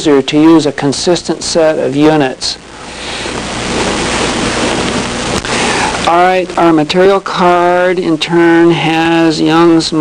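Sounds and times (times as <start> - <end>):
steady rushing noise: 0.4 - 10.0.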